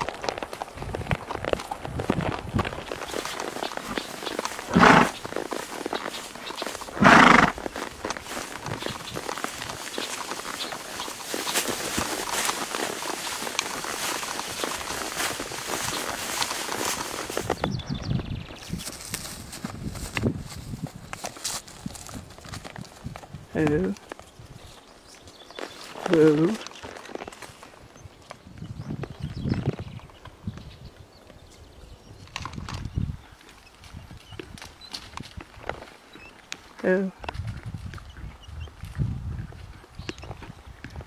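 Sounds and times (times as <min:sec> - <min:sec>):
horse hoofbeats on dirt: 0:00.0 - 0:41.0.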